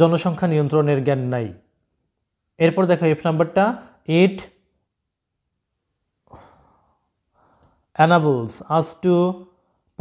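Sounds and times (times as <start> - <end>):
person breathing: 6.2 - 7.9.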